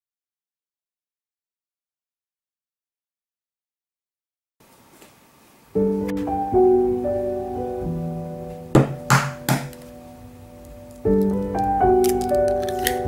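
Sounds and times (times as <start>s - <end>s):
piano music: 5.7s - 13.0s
eggshell breaking clicks: 10.9s - 13.0s.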